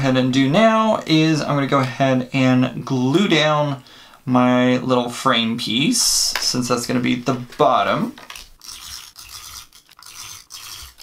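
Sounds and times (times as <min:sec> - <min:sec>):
tape runner scratching on paper: 0:08.4 - 0:11.0.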